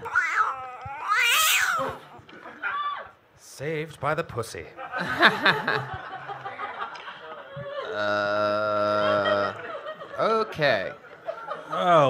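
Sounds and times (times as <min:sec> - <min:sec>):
cat yowling meow: 0:00.0 - 0:02.0.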